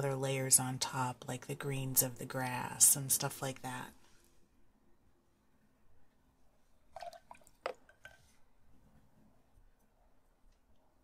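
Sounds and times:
small wet clicks: 6.9s - 8.4s.

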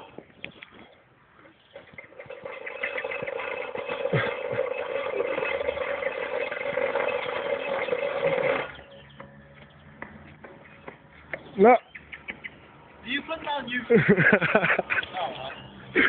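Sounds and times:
two-stroke saw engine buzzing: 1.8s - 9.0s.

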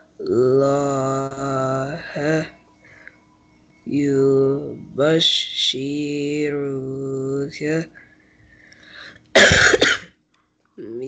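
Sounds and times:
man chanting: 0.0s - 2.6s, 3.9s - 8.0s, 10.8s - 11.0s
loud cough: 9.4s - 10.1s.

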